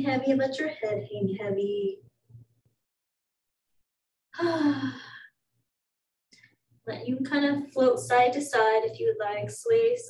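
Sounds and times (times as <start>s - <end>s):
woman sighing: 4.4s - 5.3s.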